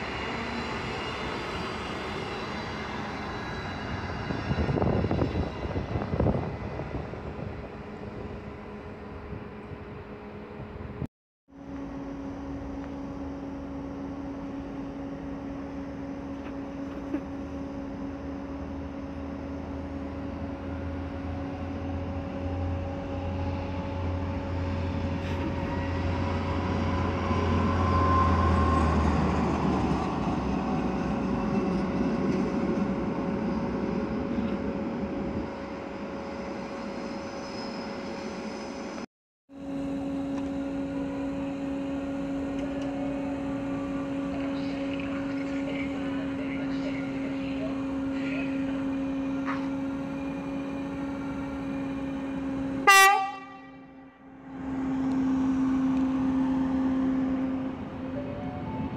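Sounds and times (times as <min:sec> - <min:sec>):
train rolling with steady hum: 0:00.0 - 0:58.9
train rumble and motor whine: 0:00.0 - 0:58.9.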